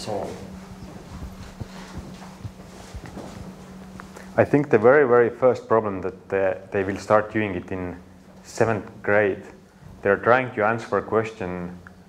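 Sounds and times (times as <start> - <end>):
steady low hum: 0.0 - 12.0
footsteps on hard floor: 0.2 - 4.3.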